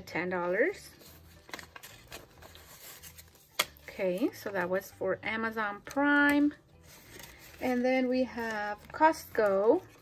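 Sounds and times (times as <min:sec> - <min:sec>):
banknotes rustling: 0:00.9 - 0:04.6, 0:06.8 - 0:10.0.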